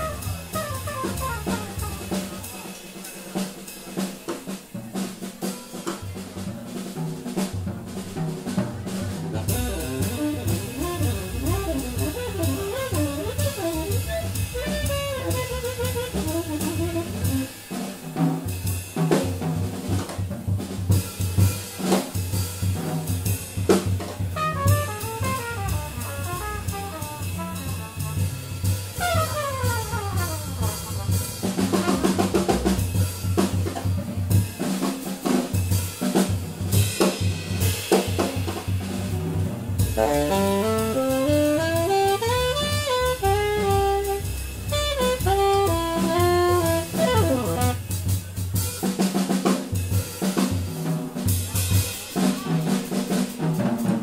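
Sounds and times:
jazz drum kit playing: 0.0s - 54.0s.

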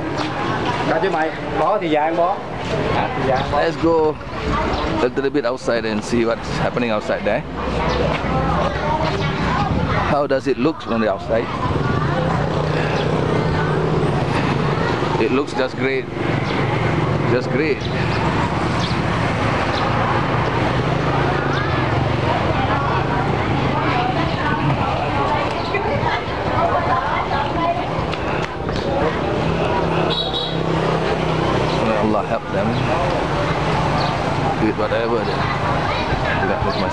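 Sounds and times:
voices: 0.0s - 36.9s.

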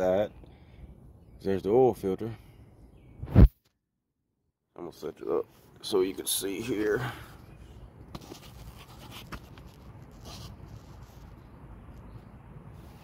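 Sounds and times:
low steady background rumble: 4.6s - 13.0s.

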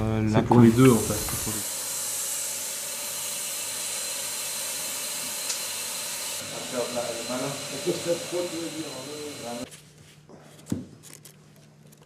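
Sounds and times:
spraying hiss: 0.6s - 9.7s.

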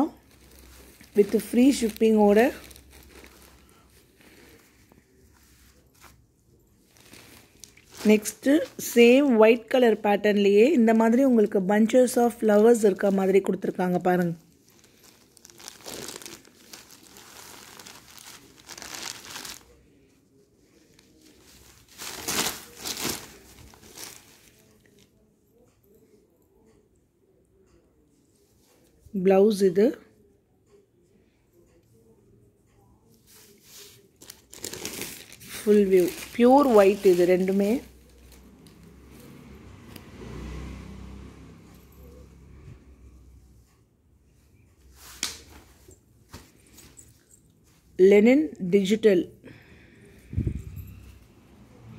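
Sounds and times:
fabric rustling and crinkling: 0.0s - 10.0s, 12.1s - 25.2s, 33.2s - 39.3s, 44.9s - 48.0s.

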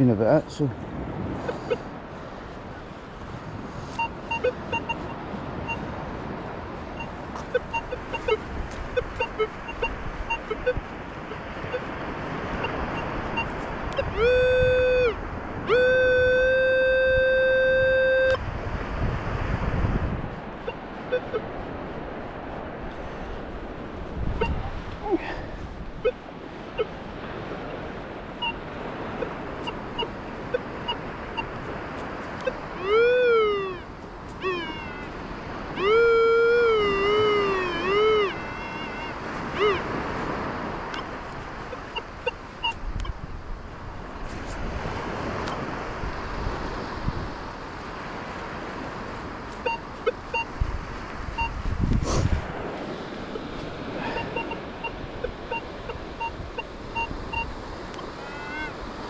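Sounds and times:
metal detector steady tone: 3.8s - 6.0s, 6.9s - 18.4s, 20.6s - 21.6s, 24.2s - 24.7s, 25.9s - 35.1s, 35.7s - 43.2s, 49.0s - 51.7s, 53.2s - 58.7s
metal detector warbling signal: 3.9s - 5.9s, 7.0s - 11.9s, 12.6s - 18.4s, 20.6s - 21.5s, 24.4s - 24.7s, 26.0s - 26.2s, 28.4s - 31.6s, 32.4s - 40.0s, 40.9s - 43.1s, 49.5s - 50.6s, 51.3s - 51.6s, 54.0s - 58.7s.

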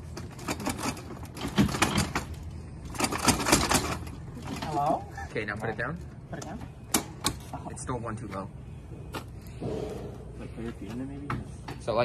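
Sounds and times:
metal stretcher frame clattering: 0.0s - 5.0s.

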